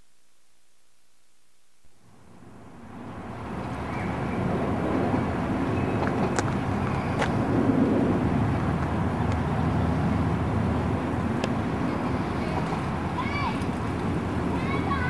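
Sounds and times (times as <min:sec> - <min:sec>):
road traffic rumble: 0:02.0 - 0:15.0.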